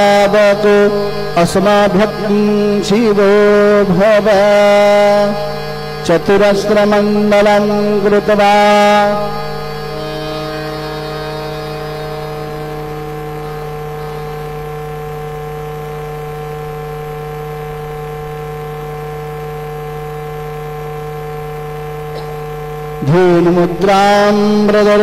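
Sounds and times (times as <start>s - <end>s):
steady hum of held tones: 0.0s - 25.0s.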